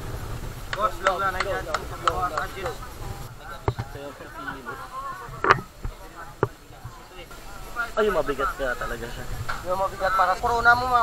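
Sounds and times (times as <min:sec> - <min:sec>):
low voices talking: 0:00.6 - 0:11.0.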